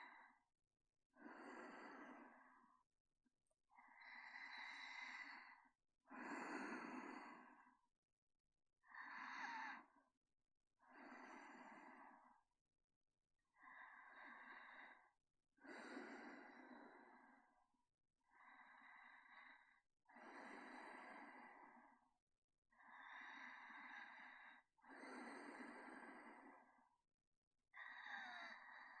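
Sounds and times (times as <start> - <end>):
person breathing slowly: 1.2 - 2.9, 3.7 - 7.9, 10.8 - 12.5, 13.5 - 17.6, 18.3 - 22.1, 22.8 - 27.0.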